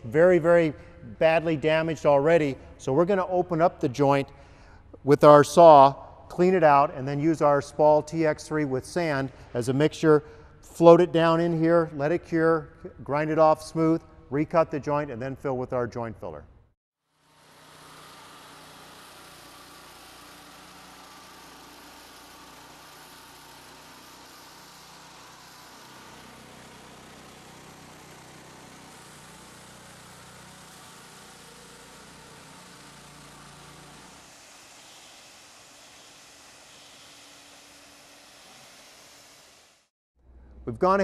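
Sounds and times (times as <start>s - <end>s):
concrete saw cutting: 17.1s - 39.9s
dust vacuum running: 17.2s - 39.8s.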